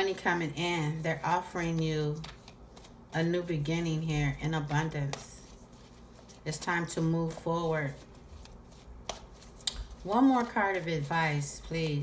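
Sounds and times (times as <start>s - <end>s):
cards being handled: 1.6s - 3.0s, 4.6s - 12.0s.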